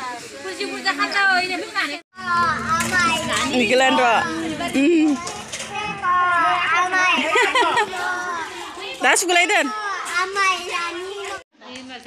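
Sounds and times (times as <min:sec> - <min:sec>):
women and children talking: 0:00.0 - 0:12.0.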